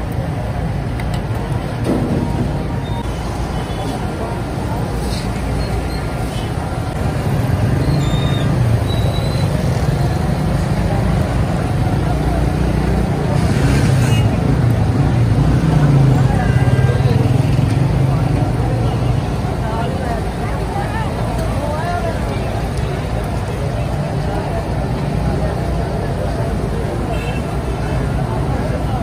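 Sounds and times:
people talking: 0.0 - 29.0
road traffic rumble: 0.0 - 29.0.

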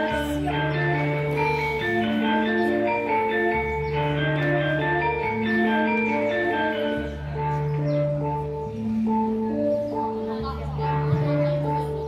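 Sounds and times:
gamelan music: 0.0 - 12.0.

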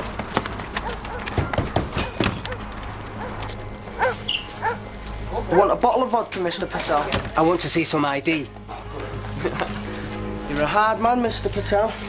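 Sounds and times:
footsteps on pavement: 0.0 - 5.5.

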